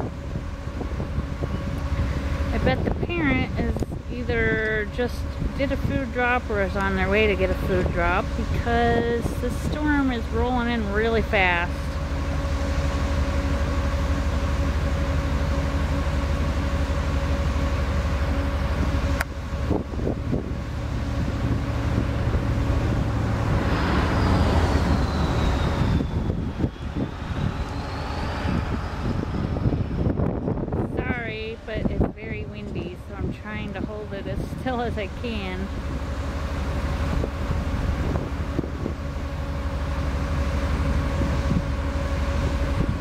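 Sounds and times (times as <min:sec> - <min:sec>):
steady motor hum: 0:00.0 - 0:43.0
wind buffeting microphone: 0:00.0 - 0:43.0.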